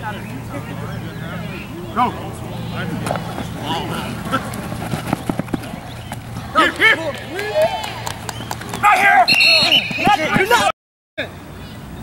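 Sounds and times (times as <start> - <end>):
people shouting: 5.6 - 10.7.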